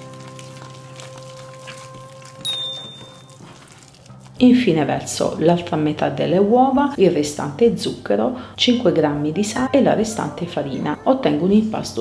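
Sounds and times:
soft background music: 0.0s - 12.0s
short high chime: 2.4s - 3.3s.

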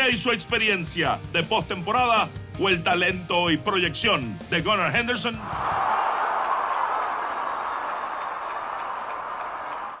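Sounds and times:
crowd cheering: 5.4s - 10.0s.

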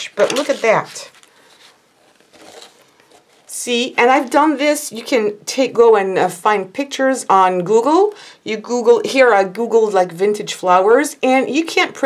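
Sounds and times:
plastic sheet rustling: 0.0s - 3.5s
plastic sheet scuffing on table: 0.2s - 3.5s.

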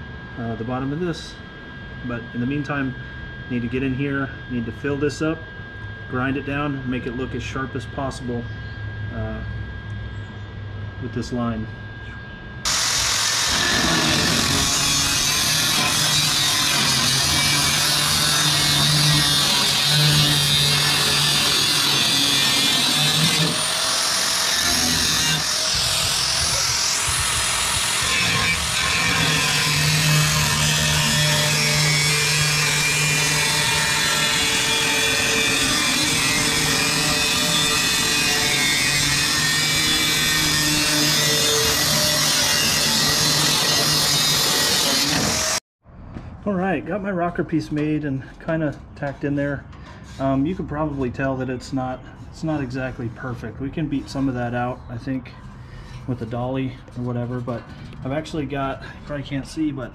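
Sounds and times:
angle grinder cutting metal: 12.6s - 45.6s.

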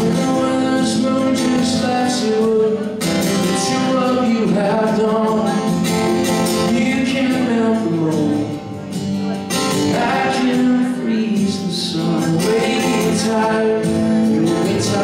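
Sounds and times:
acoustic guitar strumming: 0.0s - 15.0s
man singing: 0.0s - 15.0s.

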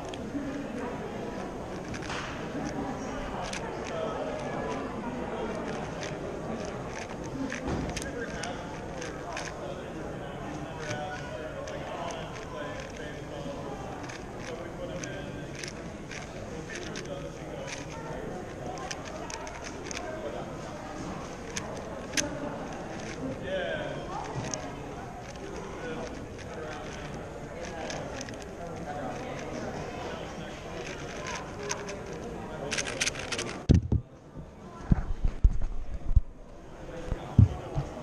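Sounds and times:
plastic cube clicking as turned: 0.0s - 9.6s, 10.4s - 23.3s, 24.1s - 33.9s
murmur of voices: 0.0s - 38.0s
camera handling bumps: 32.7s - 34.1s.

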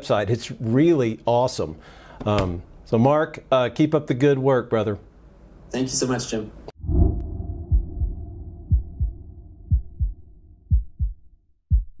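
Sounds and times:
heartbeat thumps: 6.9s - 12.0s.

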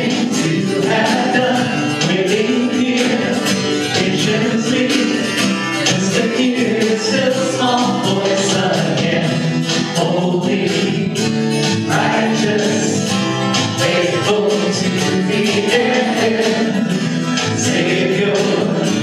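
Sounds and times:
acoustic guitar strummed: 0.0s - 19.0s
man singing lead vocals: 0.0s - 19.0s
voices singing along: 0.0s - 19.0s.

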